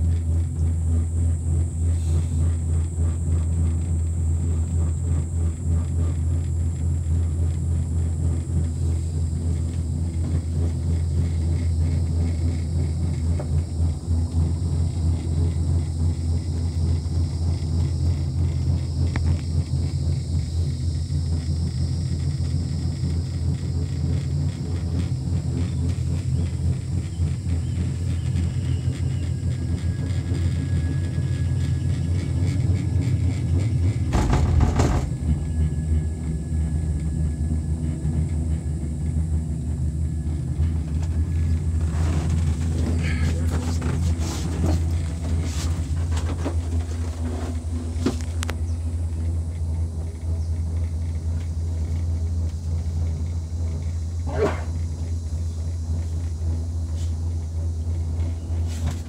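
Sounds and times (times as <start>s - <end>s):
gondola cabin low rumble: 0.0s - 59.0s.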